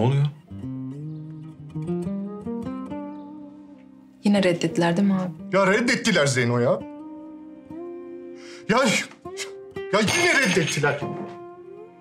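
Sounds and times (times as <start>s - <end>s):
plucked acoustic guitar melody: 0.3s - 6.1s.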